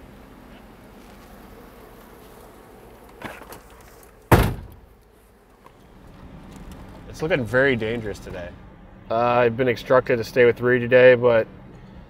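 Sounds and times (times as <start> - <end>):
low outdoor hum: 0.0 - 12.0
vehicle door shutting: 3.1 - 5.0.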